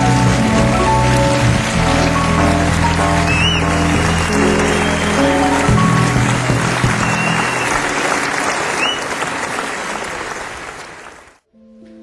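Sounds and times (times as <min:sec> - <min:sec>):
audience applauding: 0:00.0 - 0:11.4.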